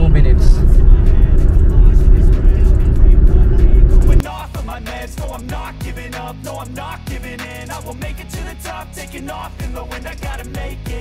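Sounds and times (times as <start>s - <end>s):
car cabin road rumble: 0.0s - 4.2s
rap music: 0.0s - 11.0s.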